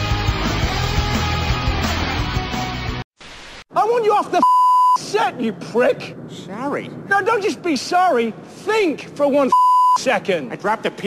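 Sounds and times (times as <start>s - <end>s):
high-pitched censor bleep: 4.4s - 5.0s, 9.5s - 10.0s.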